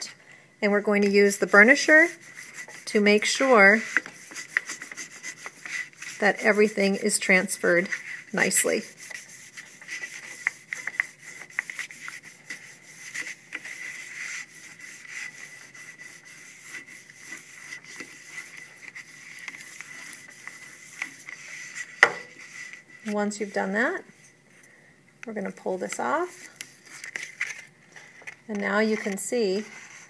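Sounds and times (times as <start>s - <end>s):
burnisher rubbing on paper: 0.8s - 23.6s, 28.8s - 30.0s.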